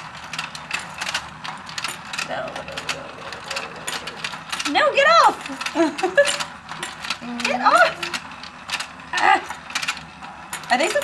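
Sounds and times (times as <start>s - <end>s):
plastic gears clicking and rattling: 0.0s - 11.0s
small motor humming: 0.0s - 11.0s.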